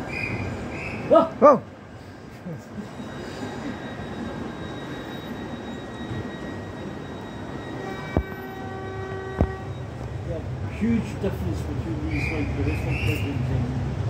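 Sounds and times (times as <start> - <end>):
rail rumble: 0.0 - 1.1, 1.7 - 14.0
train wheels squealing: 0.0 - 1.1, 1.9 - 10.2, 12.0 - 13.5.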